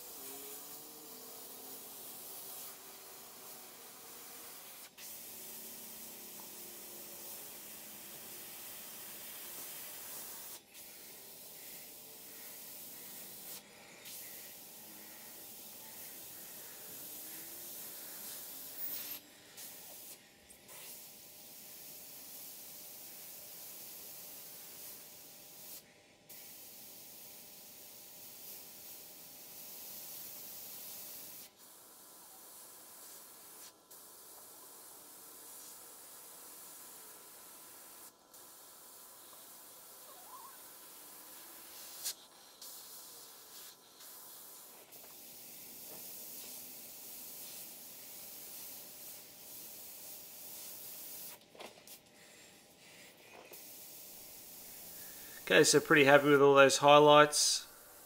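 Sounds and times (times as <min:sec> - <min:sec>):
airbrush air hiss: 0:00.0 - 0:58.0.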